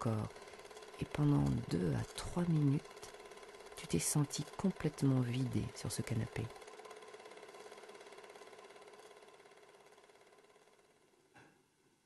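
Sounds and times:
film projector clattering: 0:00.0 - 0:11.2.

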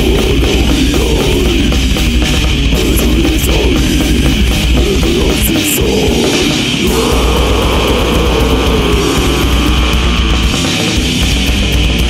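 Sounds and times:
death metal music: 0:00.0 - 0:12.0.

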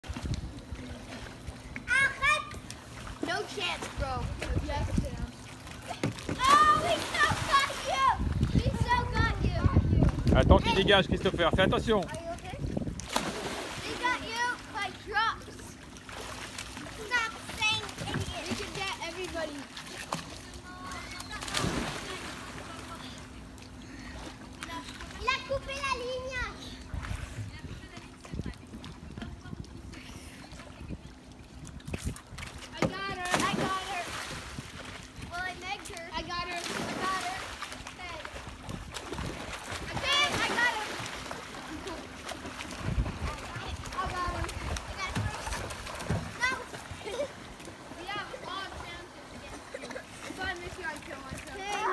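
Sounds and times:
pool water splashing: 0:00.0 - 0:51.9
children shouting: 0:06.4 - 0:08.1
wind rumbling on microphone: 0:07.1 - 0:13.1, 0:42.7 - 0:45.7.

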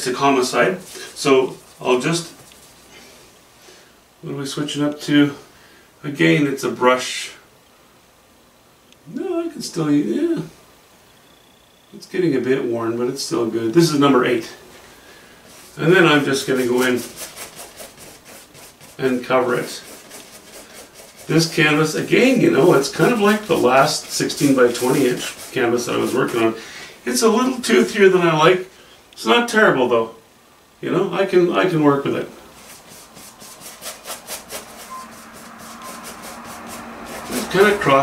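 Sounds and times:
paintbrush scrubbing on canvas: 0:15.4 - 0:26.7, 0:32.4 - 0:38.0.

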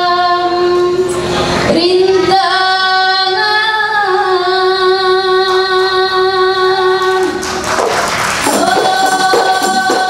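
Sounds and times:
women's group singing: 0:08.4 - 0:10.0.

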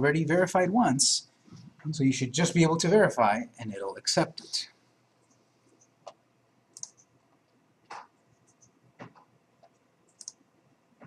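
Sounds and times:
computer mouse clicks: 0:05.2 - 0:07.1, 0:07.9 - 0:10.4.

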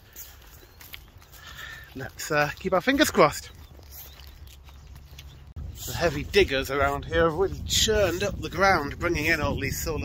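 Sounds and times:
footsteps on grass: 0:00.0 - 0:09.4
wind rumbling on microphone: 0:03.5 - 0:10.0.

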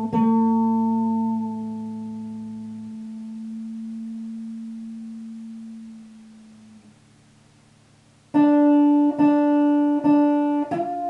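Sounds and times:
electric guitar note ringing: 0:00.0 - 0:07.1, 0:08.3 - 0:11.0.

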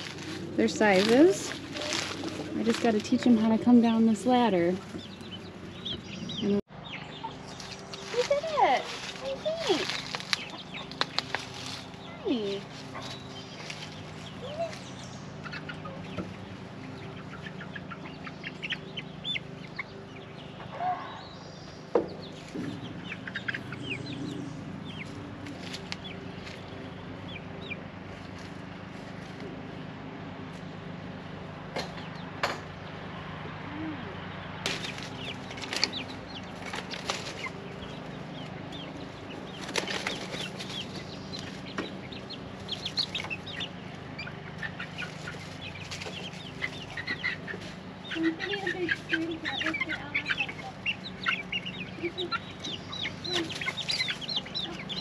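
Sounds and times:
chicks cheeping and clucking: 0:00.0 - 0:55.0
steady low hum: 0:00.0 - 0:55.0.

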